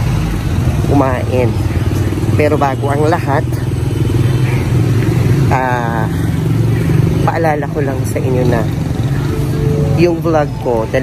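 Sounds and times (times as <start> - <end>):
traffic engines rumbling: 0.0 - 11.0
person speaking: 9.6 - 11.0.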